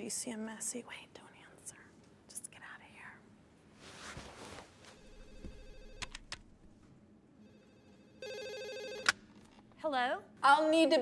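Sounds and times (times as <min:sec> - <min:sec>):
desk phone ringing: 0:04.9 - 0:06.3, 0:07.4 - 0:09.2.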